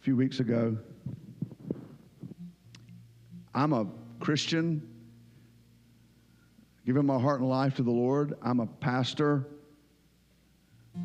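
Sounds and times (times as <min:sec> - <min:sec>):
faint steady low hum: 0:00.0 - 0:11.0
microphone thumps and rubbing: 0:00.9 - 0:02.4.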